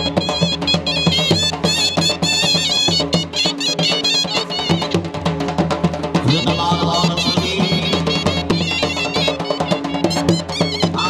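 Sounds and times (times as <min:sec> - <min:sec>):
dhol drum beaten fast: 0:00.0 - 0:11.0
reed pipe melody: 0:00.0 - 0:11.0.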